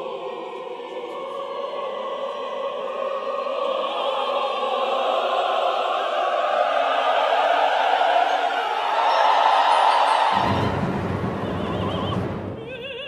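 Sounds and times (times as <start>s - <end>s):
orchestra and choir: 0.0s - 13.0s
woman singing with vibrato: 10.4s - 13.0s.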